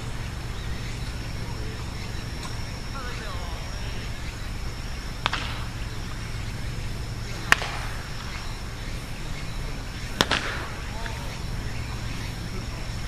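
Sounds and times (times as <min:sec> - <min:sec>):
low outdoor hum: 0:00.0 - 0:13.0
baseball bat cracks: 0:05.2 - 0:05.8, 0:07.4 - 0:07.9, 0:10.2 - 0:10.8.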